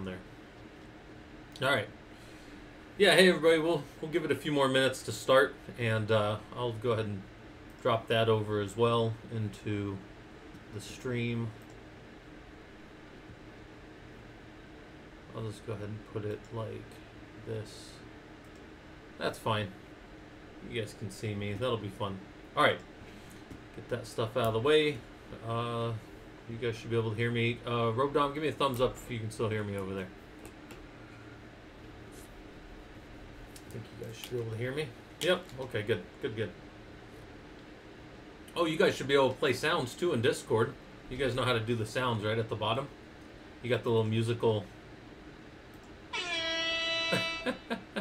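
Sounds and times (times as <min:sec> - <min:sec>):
man speaking: 0:00.0 - 0:00.2
microphone hiss: 0:00.0 - 0:48.0
soft clicks: 0:18.4 - 0:18.7.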